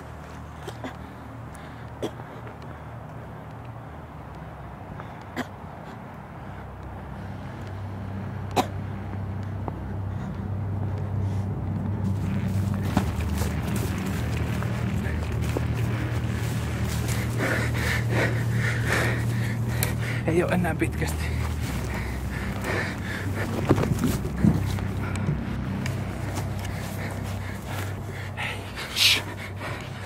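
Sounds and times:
low steady rumble: 2.6 - 30.0
dry grass rustling: 12.0 - 30.0.

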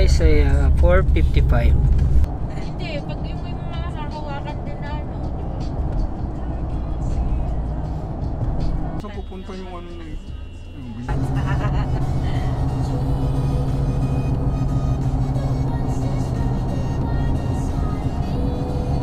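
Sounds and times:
car road and engine rumble: 0.0 - 19.0
voices: 2.5 - 5.3, 9.0 - 13.4
background music: 3.0 - 19.0.

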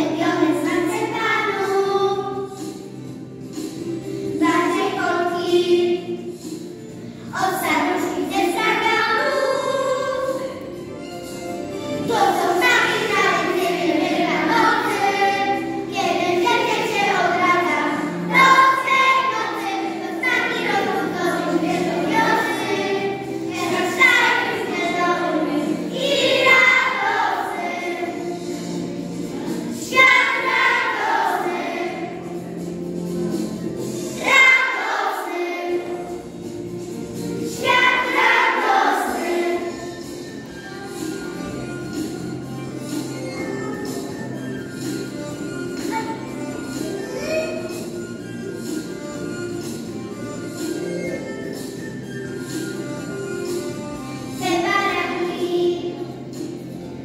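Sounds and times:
children's choir singing: 0.0 - 10.9, 11.9 - 49.0, 54.3 - 56.7
choir singing long notes: 18.1 - 28.3, 29.9 - 32.3, 34.1 - 36.1, 37.6 - 39.9.

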